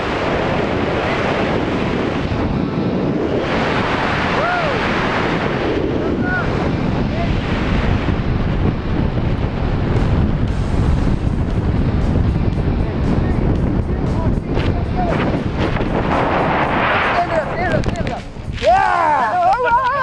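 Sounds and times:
heavy wind buffeting microphone: 0.0s - 20.0s.

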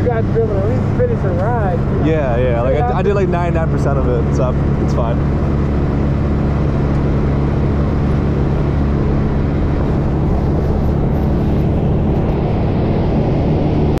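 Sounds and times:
vehicle engine humming: 0.0s - 14.0s.

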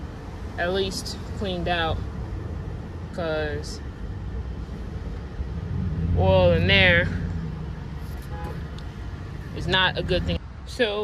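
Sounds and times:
vehicle engine idling: 0.0s - 10.4s.

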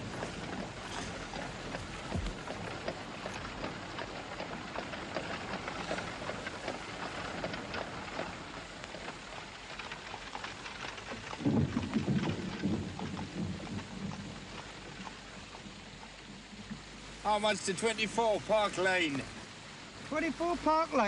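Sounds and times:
steady crackling ticks: 0.0s - 21.0s.

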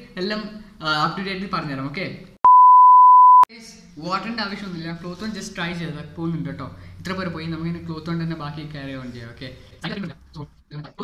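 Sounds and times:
test tone beep: 2.4s - 3.5s.

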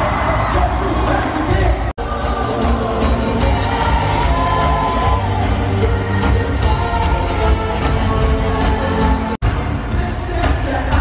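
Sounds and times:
crowd noise: 0.0s - 11.0s
live pop band and singer: 0.0s - 11.0s.

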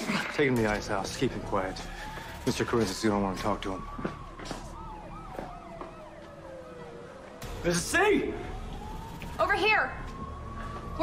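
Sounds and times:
distant police siren steady tone: 0.1s - 11.0s
police siren sweeping up and down: 0.4s - 11.0s.

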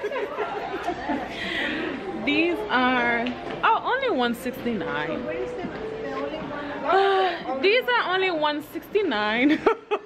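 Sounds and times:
background chatter of voices: 0.0s - 9.6s.

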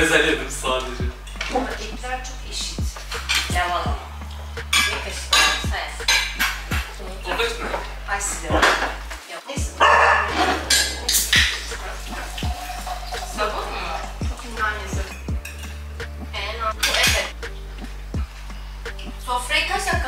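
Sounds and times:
people talking: 0.0s - 4.1s, 4.7s - 6.2s, 6.8s - 12.5s, 13.2s - 15.2s, 16.2s - 17.3s, 19.1s - 20.0s
background music with beat: 0.0s - 20.0s
cutlery and plates clinking: 1.2s - 1.8s, 3.2s - 3.5s, 4.6s - 7.9s, 8.6s - 9.2s, 9.8s - 13.5s, 15.0s - 15.8s, 16.8s - 17.3s.

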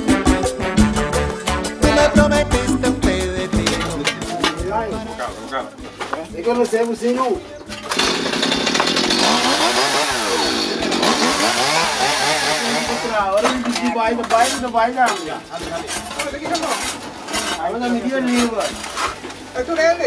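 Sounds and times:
chainsaw running and revving: 7.9s - 13.3s.

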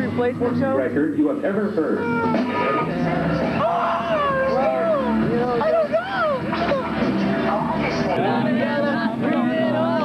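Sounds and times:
person wailing loudly: 3.6s - 6.9s.

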